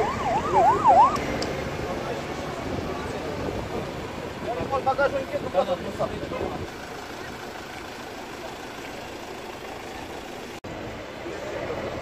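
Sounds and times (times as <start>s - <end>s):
vehicle engines idling: 0.0s - 12.0s.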